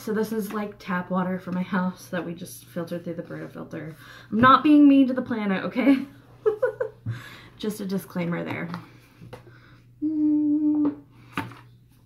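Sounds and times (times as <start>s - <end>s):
woman humming: 10.0s - 11.1s.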